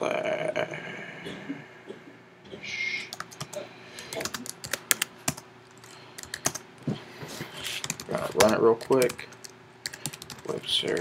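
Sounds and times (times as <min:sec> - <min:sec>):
computer keyboard typing: 0:03.1 - 0:06.6, 0:07.8 - 0:11.0.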